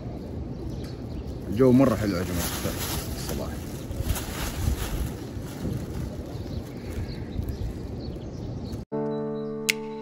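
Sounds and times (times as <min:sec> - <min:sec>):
wind buffeting microphone: 0:00.0 - 0:08.8
plastic bag crinkling: 0:01.9 - 0:07.5.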